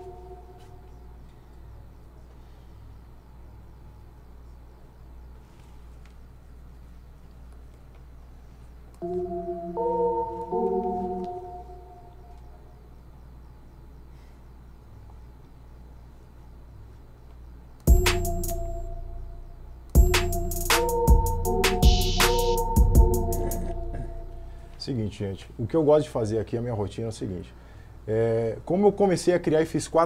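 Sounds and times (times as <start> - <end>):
low steady hum: 0.0 - 30.0
organ-like synth chords: 9.0 - 13.4, 17.8 - 25.1.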